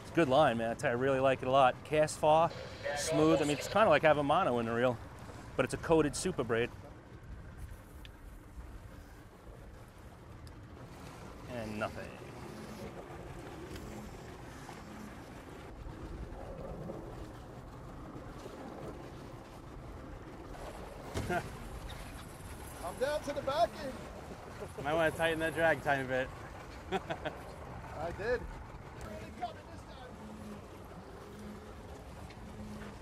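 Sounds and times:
boat engine rumble: 0.0s - 33.0s
water noise: 0.0s - 33.0s
wind: 0.0s - 33.0s
voices: 0.2s - 5.0s.

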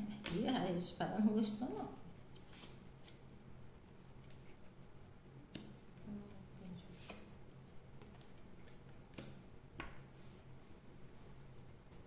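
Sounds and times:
cards being shuffled: 5.6s - 10.4s.

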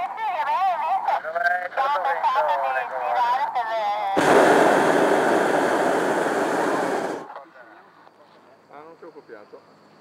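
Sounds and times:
propane burner blast: 4.2s - 7.4s.

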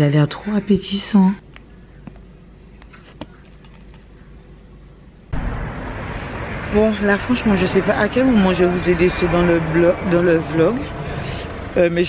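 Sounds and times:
woman's voice: 0.0s - 1.4s
street noise rushing hiss: 5.2s - 12.0s.

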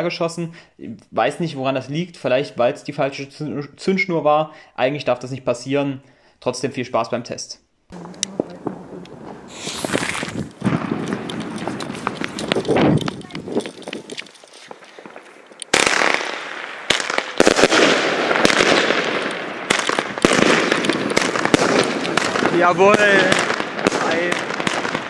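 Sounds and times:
firework battery shots: 8.0s - 13.5s, 14.1s - 25.0s.

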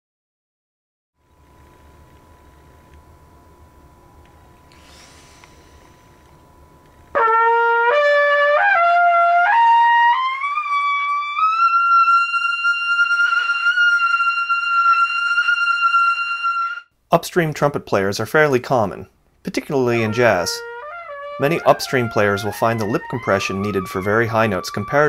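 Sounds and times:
faint room hum: 1.2s - 7.2s
trumpet playing: 7.1s - 16.9s, 19.6s - 25.0s.

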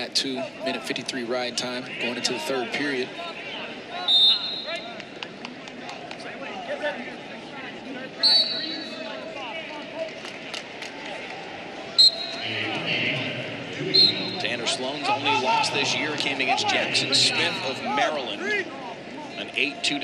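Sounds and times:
distant voices and shouts: 0.0s - 10.2s, 10.9s - 20.0s
referee whistle blasts: 4.0s - 4.9s, 8.2s - 9.0s, 12.0s - 12.4s, 13.9s - 14.4s.

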